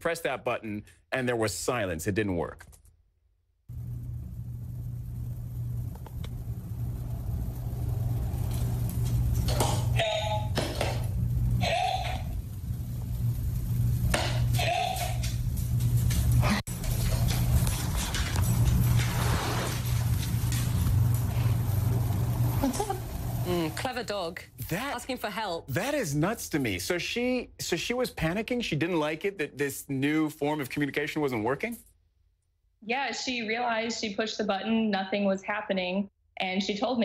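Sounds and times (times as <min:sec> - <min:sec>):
steady low hum: 0:03.7 - 0:24.4.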